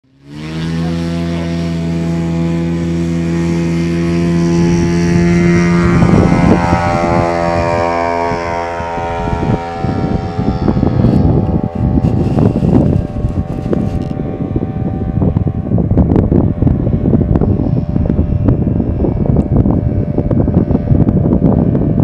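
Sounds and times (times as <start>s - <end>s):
model plane engine drone: 0.1s - 22.0s
wind buffeting microphone: 0.4s - 22.0s.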